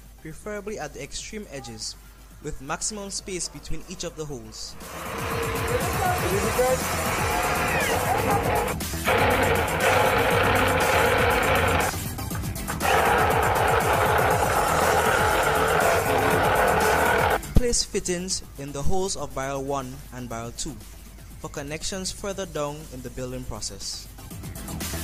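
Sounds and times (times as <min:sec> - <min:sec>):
electric drill boring plastic: 0:04.8 - 0:12.0, 0:12.8 - 0:17.4.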